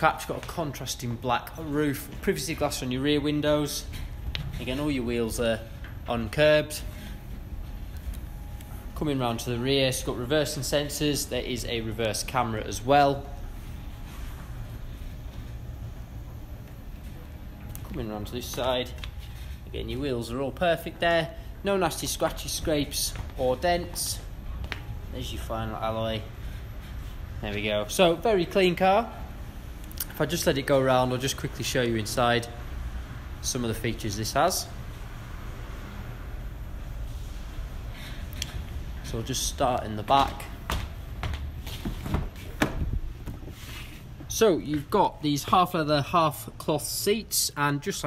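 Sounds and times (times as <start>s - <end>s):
low steady rumble: 0.0s - 41.6s.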